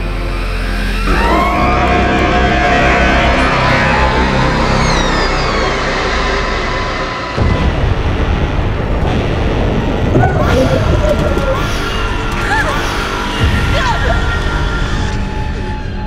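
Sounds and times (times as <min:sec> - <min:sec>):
dense noise and rising tones: 0:01.8 - 0:12.4.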